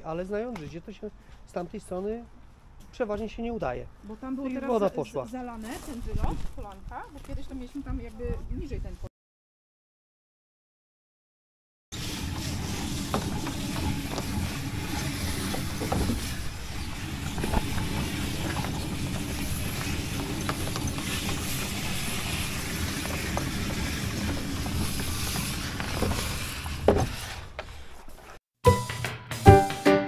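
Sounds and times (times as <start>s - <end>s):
machine motor running: 12.0s - 26.2s
hose reel winding: 12.0s - 27.5s.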